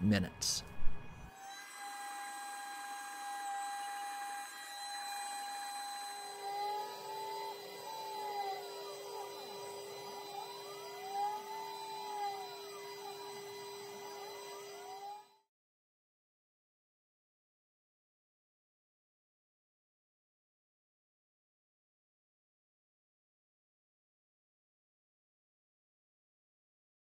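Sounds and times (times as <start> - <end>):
steady machine hum: 0.0 - 15.4
laser cutter motors whining: 0.4 - 15.4.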